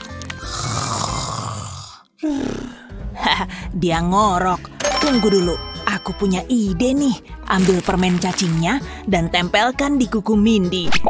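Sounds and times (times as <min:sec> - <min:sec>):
person snoring: 0:00.4 - 0:03.0.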